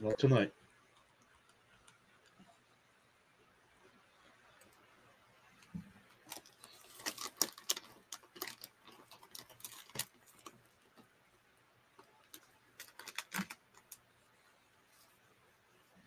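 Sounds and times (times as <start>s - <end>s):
faint clicks and taps: 0.8s - 2.8s.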